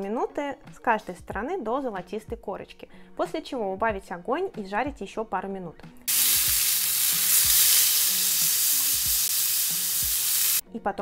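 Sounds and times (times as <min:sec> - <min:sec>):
steaks sizzling in oil: 0:06.1 - 0:10.6.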